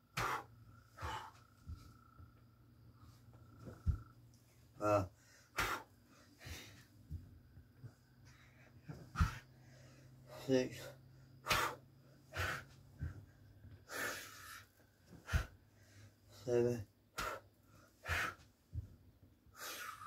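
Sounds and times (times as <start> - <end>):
dull thumps on carpeted floor: 1.1 - 2.4, 3.3 - 4.2, 6.5 - 8.0, 12.9 - 13.3, 18.7 - 19.1
man exhaling and grunting: 4.8 - 6.7.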